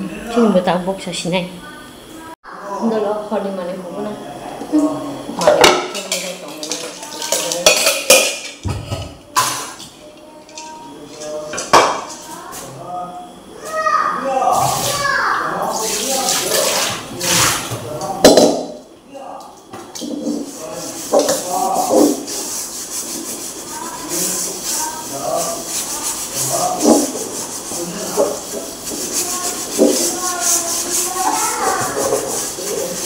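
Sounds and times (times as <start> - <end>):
metal wok being scrubbed: 5.4 - 8.6, 20.0 - 33.0.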